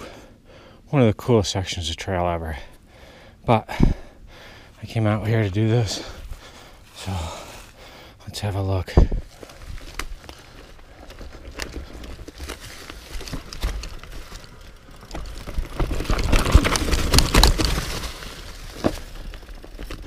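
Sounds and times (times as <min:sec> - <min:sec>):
bike tyres on dirt and leaves: 0:02.4 - 0:20.0
bike rattling and clicking: 0:09.3 - 0:20.0.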